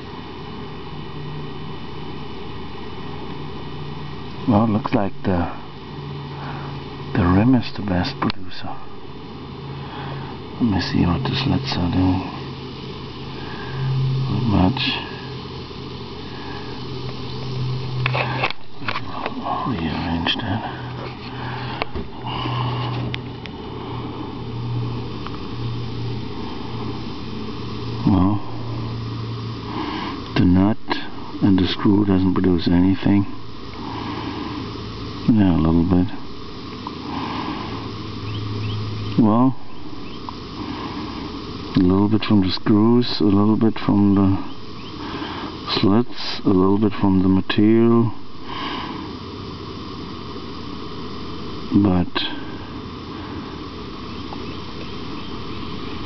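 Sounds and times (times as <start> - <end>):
faint hiss: 0.0 - 56.0
steady low hum: 0.0 - 56.0
fizzing hiss of gas bubbles: 32.5 - 38.3, 39.0 - 43.2, 43.8 - 46.6, 47.5 - 56.0.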